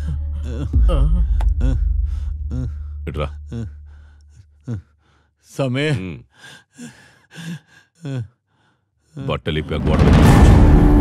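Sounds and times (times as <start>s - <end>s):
wavering sigh or groan: 0.0s - 5.1s, 6.8s - 8.4s
man speaking: 2.6s - 3.7s, 9.2s - 10.1s.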